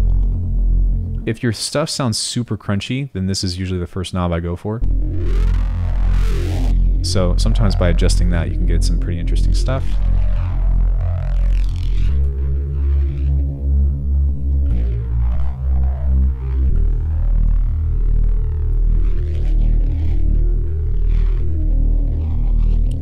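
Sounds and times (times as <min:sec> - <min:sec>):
distorted bass synth notes: 0:00.0 - 0:02.1, 0:04.8 - 0:23.0.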